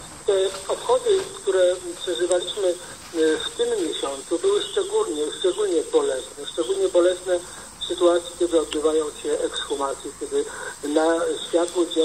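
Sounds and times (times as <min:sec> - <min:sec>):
person speaking over radio: 0:00.3 - 0:12.0.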